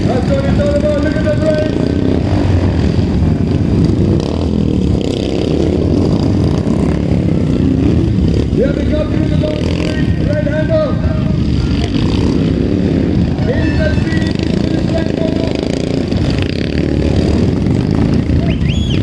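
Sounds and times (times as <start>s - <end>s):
voices: 0.0s - 2.4s, 8.4s - 16.9s, 18.0s - 19.0s
motorcycle engines revving: 0.0s - 19.0s.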